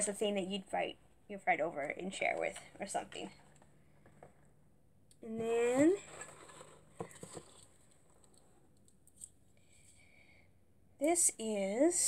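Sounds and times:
packaging rustling: 6.0 - 8.4.

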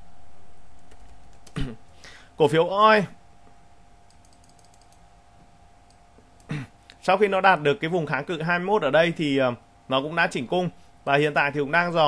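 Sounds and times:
steady faint hum: 0.0 - 12.0
computer keyboard clicking: 0.8 - 1.6, 4.1 - 5.0.

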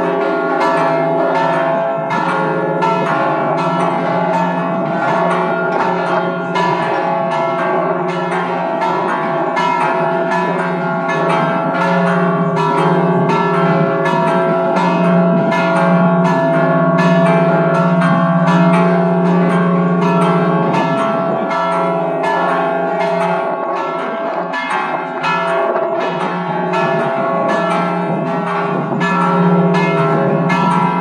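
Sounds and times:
church bells pealing: 0.0 - 31.0.

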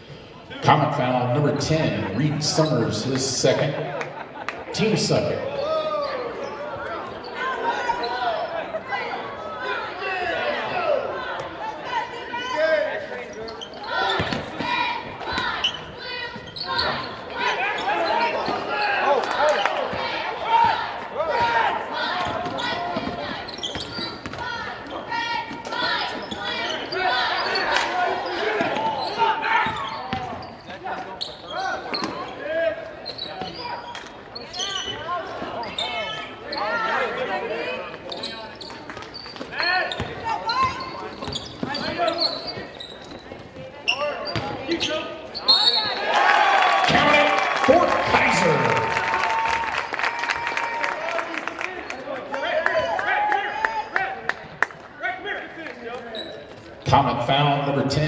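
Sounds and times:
echoing crowd babble: 0.0 - 58.0.

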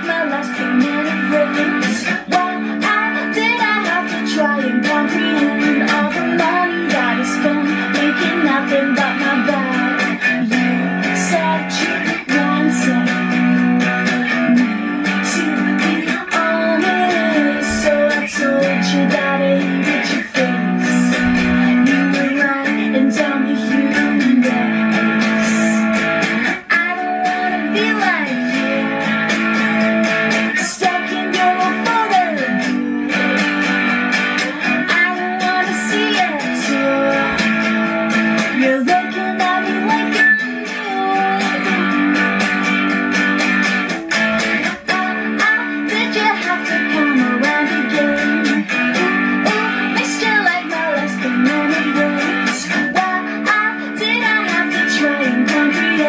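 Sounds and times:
electric guitar strumming: 0.0 - 56.0
woman singing: 0.0 - 56.0.

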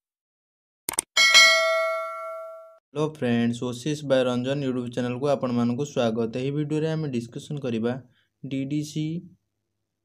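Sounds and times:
bright bell ding: 1.2 - 2.8.

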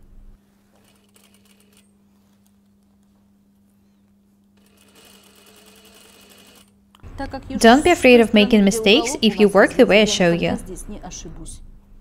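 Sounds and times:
sewing machine stitching: 4.6 - 6.7
low hum: 7.0 - 12.0.

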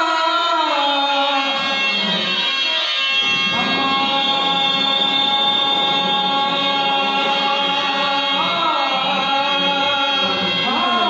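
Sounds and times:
person singing: 0.0 - 11.0
drone of held notes: 2.2 - 11.0.

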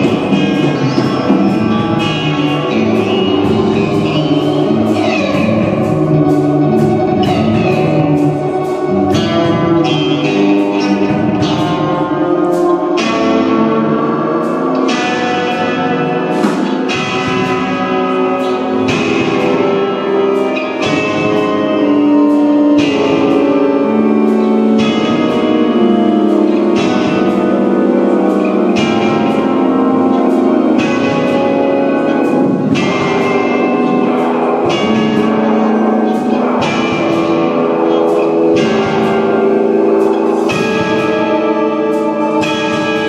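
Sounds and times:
drums: 0.0 - 43.0
ringing guitar and keyboard chords: 0.0 - 43.0
rock band playing: 0.0 - 43.0.

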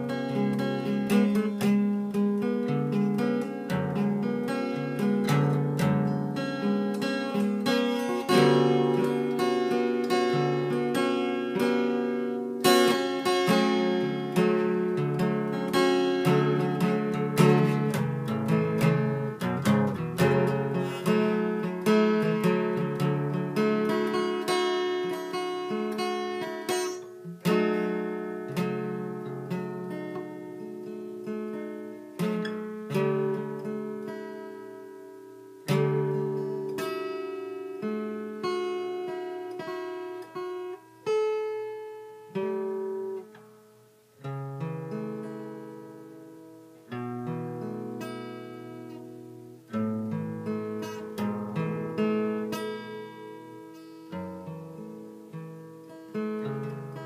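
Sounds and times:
solo acoustic guitar: 0.0 - 57.0.

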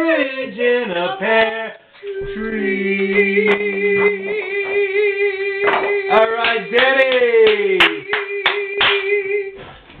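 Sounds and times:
held sung note: 2.0 - 6.8
people clapping: 3.0 - 9.3.

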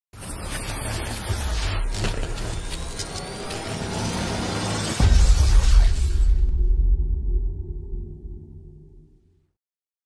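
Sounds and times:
rising whine: 0.3 - 8.6
low rumble: 3.5 - 9.2.

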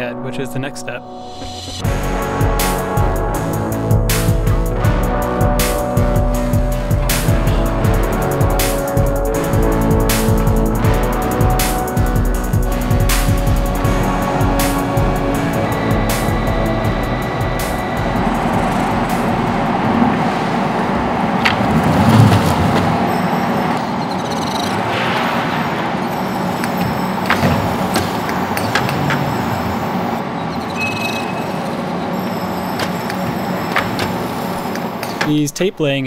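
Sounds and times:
background music: 0.0 - 25.1
steady machine noise: 1.4 - 35.2.

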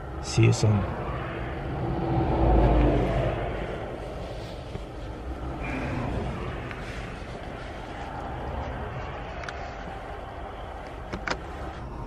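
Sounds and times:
vehicle rumble inside car: 0.0 - 12.0.

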